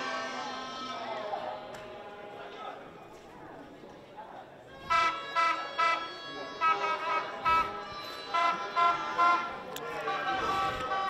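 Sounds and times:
horn tooting: 4.7s - 11.0s.

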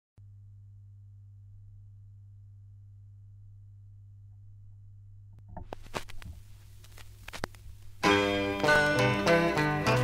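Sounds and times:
low electrical hum: 0.2s - 8.2s.

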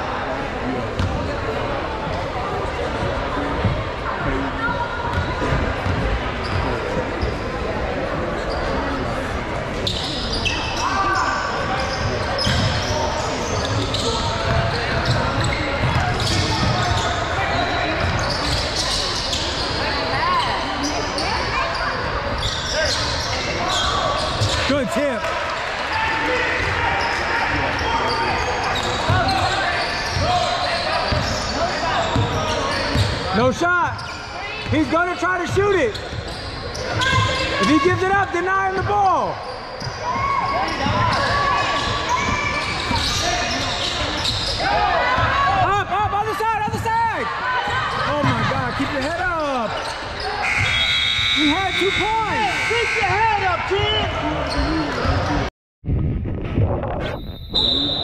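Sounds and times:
sneakers squeaking: 0.9s - 55.5s
echoing voices: 40.2s - 55.5s.

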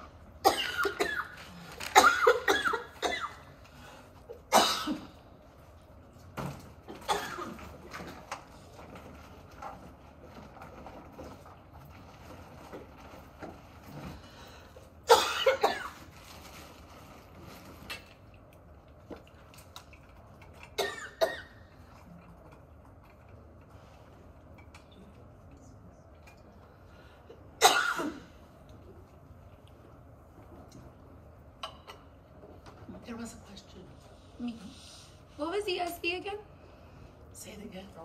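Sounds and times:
woman coughing: 0.4s - 3.5s, 4.5s - 5.2s, 7.0s - 7.6s, 15.1s - 16.0s, 20.8s - 21.6s, 27.6s - 28.3s.

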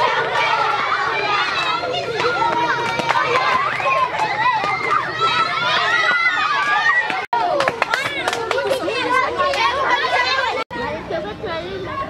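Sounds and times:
girls calling and shouting: 0.0s - 12.0s.

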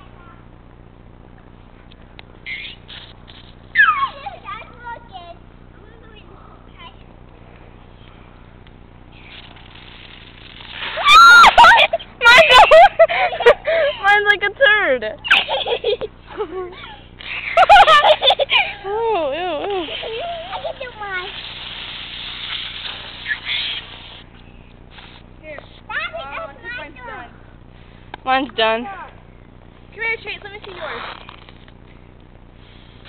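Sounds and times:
faint outdoor background hiss: 0.0s - 33.0s
aerosol can spraying: 2.6s - 3.5s, 19.6s - 24.3s, 24.9s - 25.2s.

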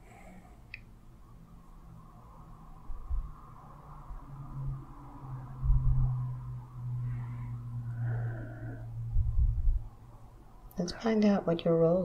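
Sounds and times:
breath noise: 7.0s - 9.7s.

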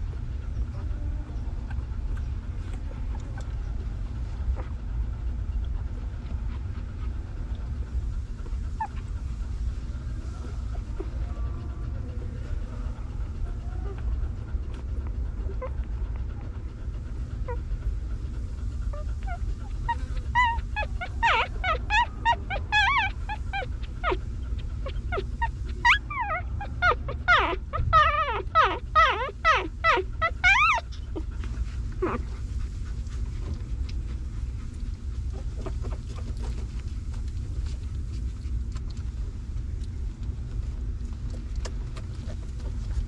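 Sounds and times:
low steady rumble: 0.0s - 43.0s
puppies squeaking and whimpering: 8.8s - 9.1s, 18.9s - 32.4s, 35.3s - 36.7s.

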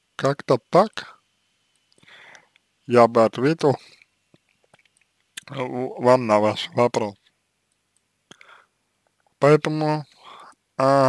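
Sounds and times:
soft breath: 2.0s - 2.6s, 8.3s - 8.8s, 10.1s - 10.6s
man's voice: 5.4s - 7.2s, 10.8s - 11.0s
mouth click: 8.3s - 8.6s.

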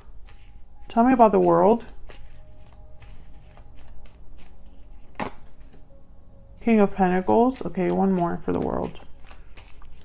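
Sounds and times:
cards being shuffled: 0.0s - 5.8s, 7.2s - 10.0s.

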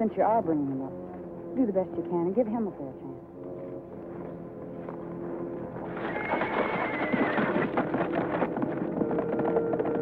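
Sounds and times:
soft music score: 0.0s - 10.0s
hoofbeats: 3.4s - 10.0s
horse whinnying: 5.9s - 10.0s.

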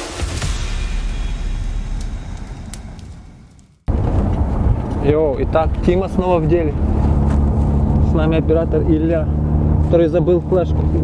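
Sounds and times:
car engine and road rumble: 3.8s - 11.0s.

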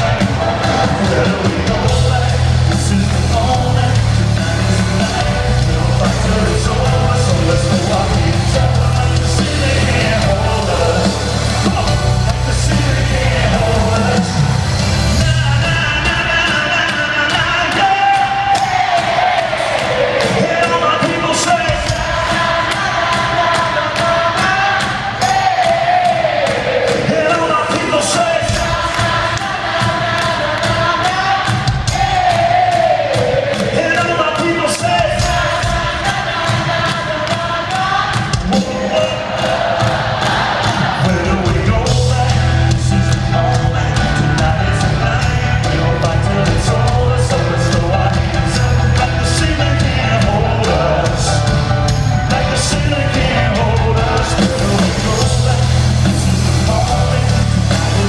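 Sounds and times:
heavy bass and drum beat: 0.0s - 58.0s
live band music over pa: 0.0s - 58.0s
person singing: 0.0s - 58.0s.

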